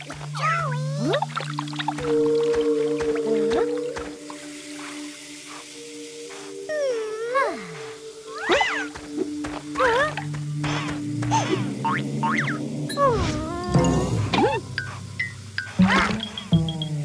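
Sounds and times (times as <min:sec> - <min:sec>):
cartoon background music: 0:00.0 - 0:05.0, 0:06.6 - 0:17.0
cartoon character wordless vocals: 0:00.4 - 0:01.3, 0:06.7 - 0:08.9, 0:12.9 - 0:14.6.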